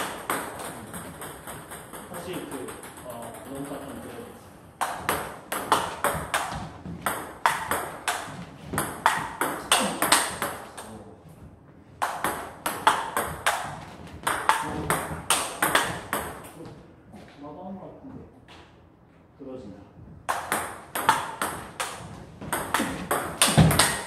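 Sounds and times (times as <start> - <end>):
ping pong ball bouncing on table: 0.0 - 4.1, 4.8 - 10.6, 12.0 - 16.4, 20.3 - 24.0
ping pong ball hitting paddles: 0.0 - 4.1, 4.8 - 10.9, 12.0 - 16.6, 20.2 - 24.0.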